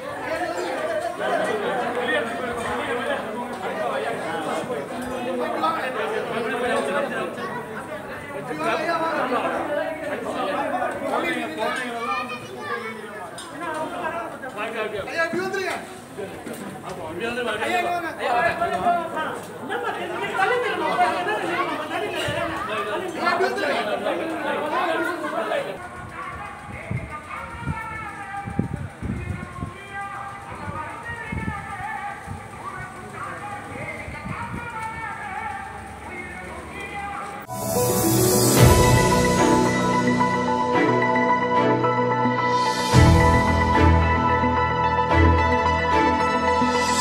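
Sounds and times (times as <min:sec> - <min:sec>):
people chattering: 0:00.0 - 0:47.0.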